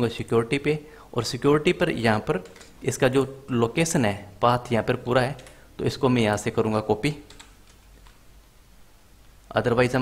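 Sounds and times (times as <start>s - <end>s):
computer keyboard and mouse clicks: 2.3s - 2.8s, 5.3s - 5.6s, 7.2s - 8.2s.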